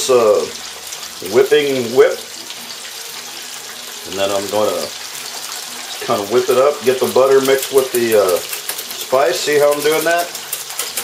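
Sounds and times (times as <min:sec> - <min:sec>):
chicken frying in hot oil: 0:00.0 - 0:11.0.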